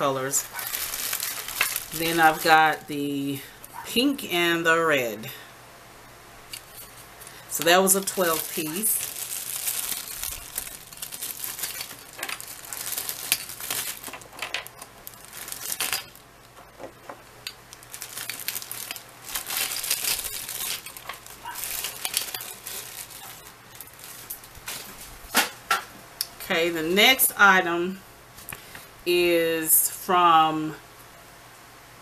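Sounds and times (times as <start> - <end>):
foil sheets crinkling: 0.0 - 3.0, 6.5 - 25.4.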